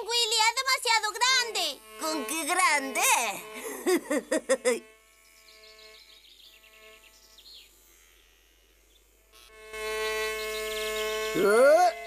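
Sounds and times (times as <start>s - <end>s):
cartoon bees buzzing: 0.0s - 12.0s.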